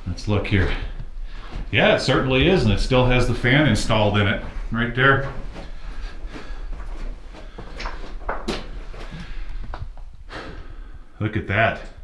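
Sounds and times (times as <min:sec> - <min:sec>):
steady low rumble: 0:00.0 - 0:07.5
footsteps scraping on rock: 0:02.5 - 0:09.9.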